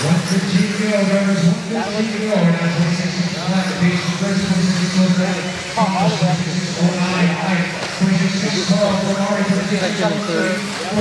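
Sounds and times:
announcer over public-address system: 0.0 - 11.0.

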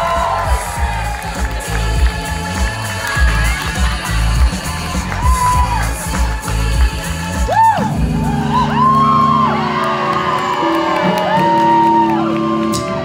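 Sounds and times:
crowd whooping: 0.0 - 1.6, 5.0 - 6.0, 7.4 - 13.0
pounding bass and drums: 0.0 - 9.2.

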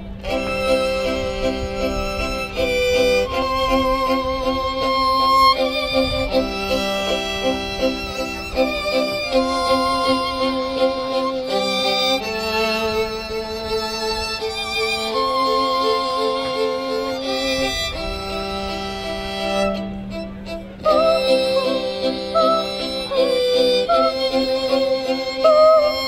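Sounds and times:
pulsing lower accompaniment: 0.0 - 26.0
violin slow melody: 0.0 - 26.0.

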